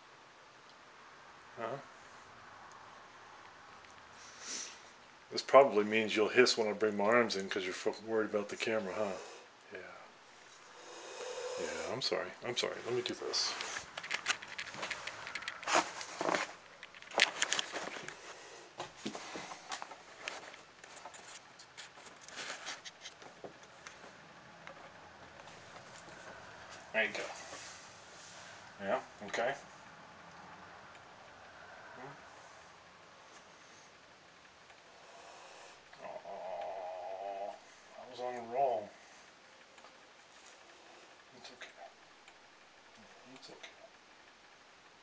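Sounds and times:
camera handling clicks and rustles: 13.6s - 18.2s.

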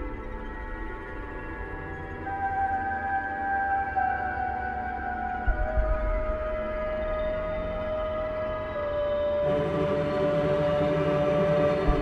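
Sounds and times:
dark ambient droning music: 0.0s - 12.0s.

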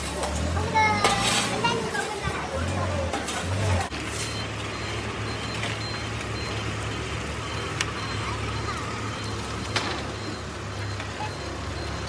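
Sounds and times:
truck engine running: 0.0s - 12.0s
faint high beep: 4.2s - 12.0s.

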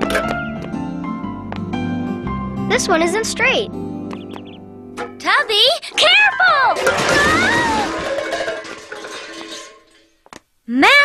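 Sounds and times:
light music: 0.0s - 5.9s
tin cans clattering: 5.0s - 10.2s.

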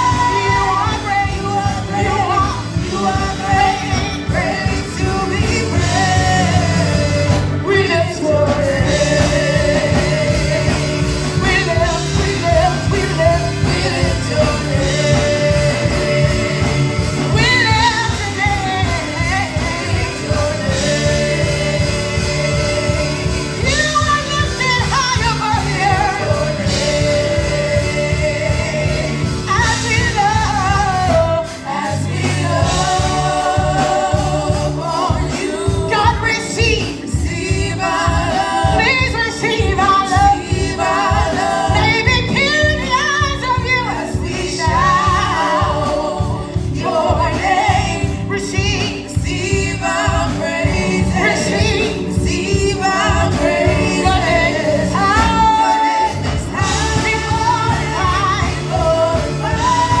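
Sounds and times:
group singing a worship song: 0.0s - 60.0s
keyboard: 0.0s - 60.0s
live band accompaniment: 0.0s - 60.0s
steady drum beat: 0.0s - 60.0s.

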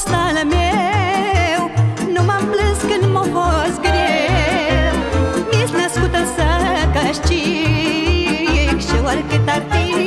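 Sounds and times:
woman singing folk song: 0.0s - 10.0s.

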